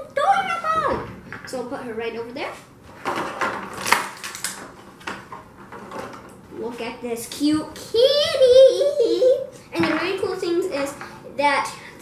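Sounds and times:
plastic tray crackling and knocking: 3.0 - 6.3.

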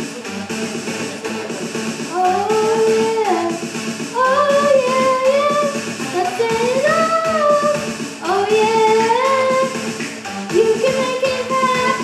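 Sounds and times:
backing music: 0.0 - 12.0
girl singing into microphone: 2.1 - 9.9, 10.5 - 12.0.

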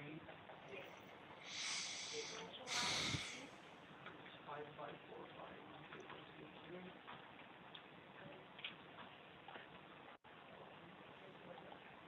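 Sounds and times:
person breathing into microphone: 1.4 - 3.5.

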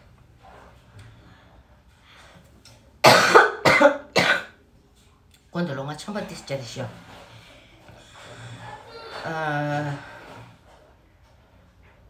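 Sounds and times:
woman coughing: 3.0 - 4.6.

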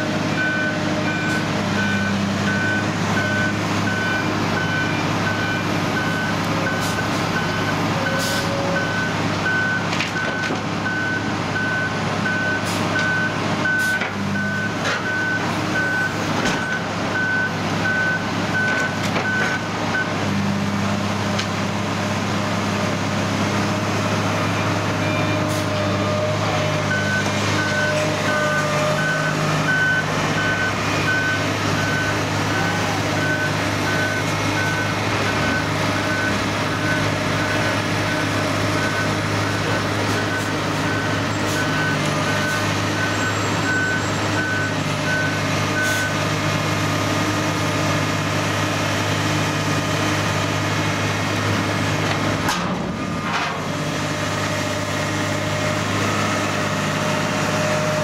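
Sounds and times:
excavator diesel engine: 0.0 - 58.0
reversing alarm beeps: 0.4 - 20.2, 26.9 - 46.3.

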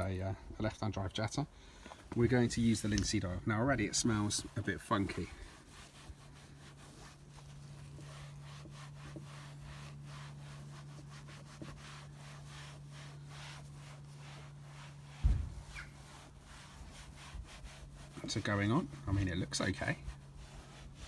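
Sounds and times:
steady low hum: 0.0 - 21.0
sponge swishing on plastic trim: 4.0 - 21.0
low thump: 15.1 - 15.8.

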